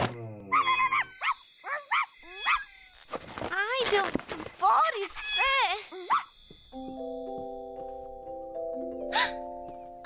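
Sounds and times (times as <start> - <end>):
cartoon animal yips: 0.5 - 2.8.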